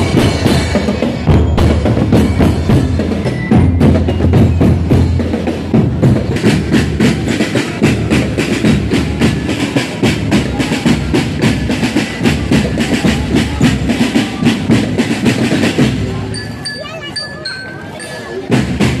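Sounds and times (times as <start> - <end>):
marching drums fast beat: 0.0 - 17.4, 18.0 - 19.0.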